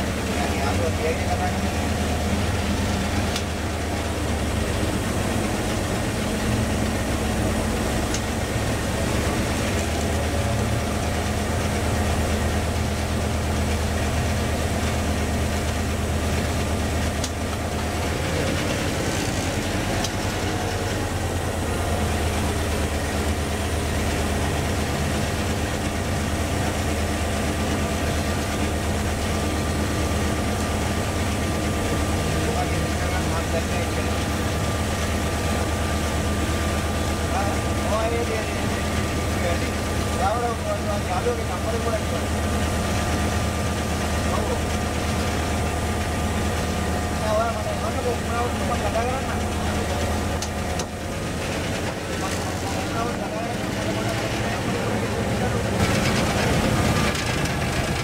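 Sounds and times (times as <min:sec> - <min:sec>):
diesel locomotive engine droning: 0:00.0 - 0:58.0
train running noise: 0:00.0 - 0:58.0.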